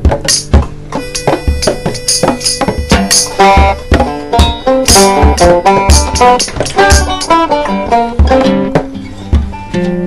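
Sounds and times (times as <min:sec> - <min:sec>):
kick drum: 0:00.0 - 0:09.6
plucked string instruments: 0:00.0 - 0:10.0
cymbals: 0:00.3 - 0:07.7.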